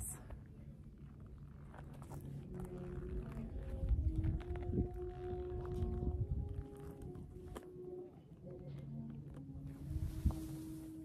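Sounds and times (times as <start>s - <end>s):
wind buffeting microphone: 3.5s - 7.0s.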